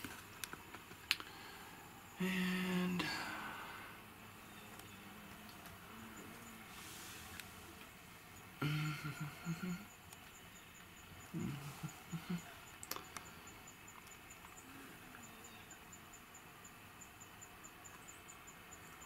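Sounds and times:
hornets buzzing: 0:01.3 - 0:19.0.

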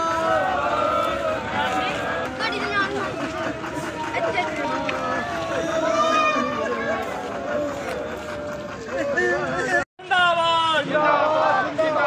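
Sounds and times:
women talking: 0:01.6 - 0:07.5.

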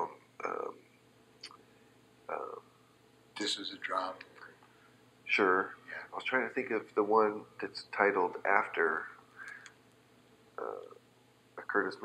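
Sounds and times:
man saying uh: 0:00.0 - 0:00.8, 0:02.3 - 0:02.6, 0:03.4 - 0:04.2, 0:10.6 - 0:11.0.

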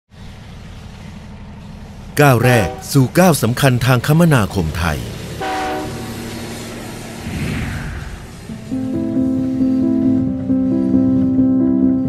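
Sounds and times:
train engine rumble: 0:00.1 - 0:12.0.

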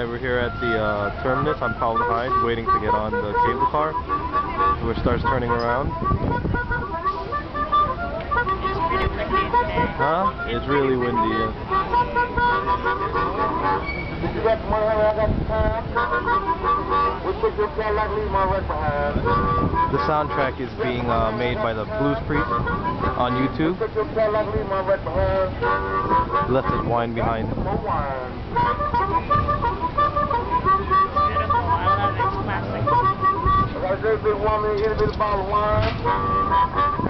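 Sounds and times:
wind rumbling on microphone: 0:00.0 - 0:10.6, 0:11.6 - 0:37.0
blues music: 0:00.0 - 0:37.0.

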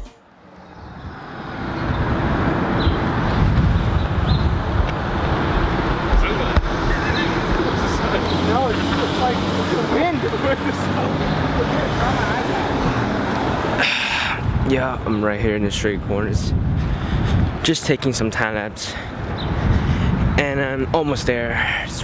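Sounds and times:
cars passing: 0:00.0 - 0:22.0
roadway rumble and tyre noise: 0:00.2 - 0:22.0.

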